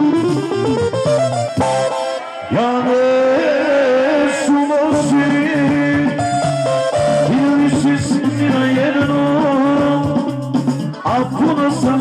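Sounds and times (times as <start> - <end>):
ornamented instrumental melody: 0.0 - 3.2, 4.6 - 12.0
band accompaniment: 0.0 - 12.0
person singing: 2.2 - 12.0.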